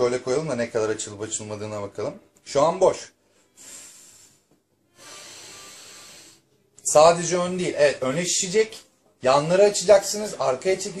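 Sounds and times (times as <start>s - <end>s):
person breathing deeply: 3.2s - 6.5s.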